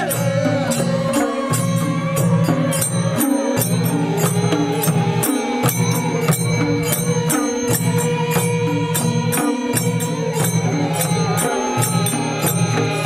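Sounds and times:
chanted singing: 0.0s - 13.0s.

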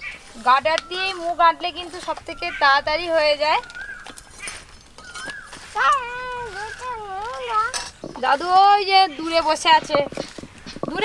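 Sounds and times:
person speaking: 5.7s - 11.0s.

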